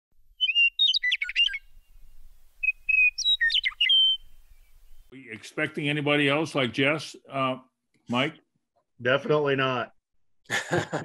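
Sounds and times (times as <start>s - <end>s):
bird chirping: 0.4s - 5.2s.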